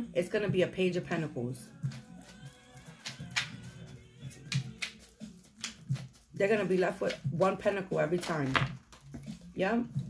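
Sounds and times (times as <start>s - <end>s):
cards being shuffled: 1.7s - 10.0s.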